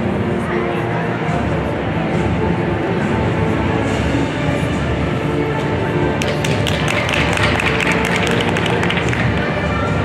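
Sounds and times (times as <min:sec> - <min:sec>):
crowd noise: 0:00.0 - 0:10.0
music playing: 0:00.0 - 0:10.0.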